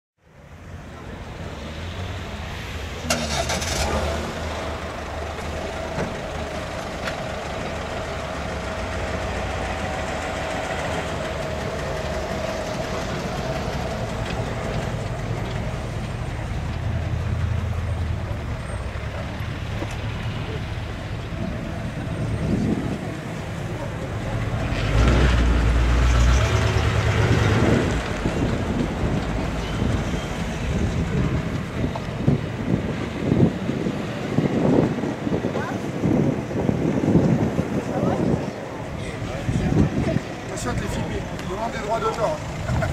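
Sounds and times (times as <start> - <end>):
car engine rumbling: 0.4 - 42.9.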